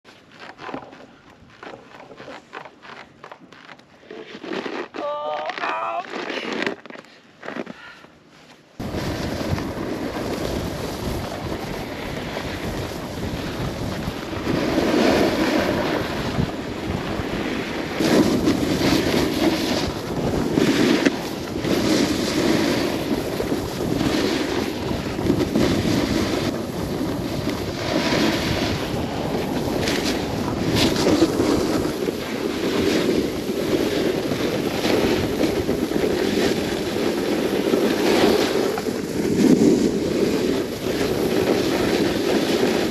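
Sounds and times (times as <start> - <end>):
skis scraping on packed snow: 0.1 - 42.9
wind rushing over microphone: 8.8 - 42.9.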